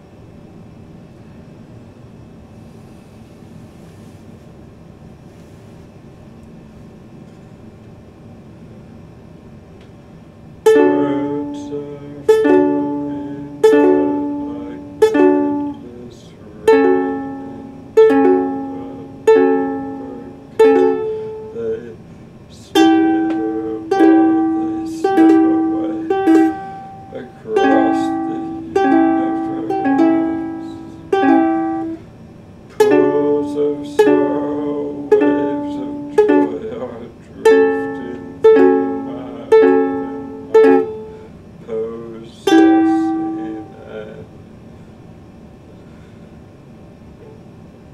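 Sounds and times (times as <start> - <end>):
ukulele chords strummed: 10.6 - 32.1, 32.7 - 44.2.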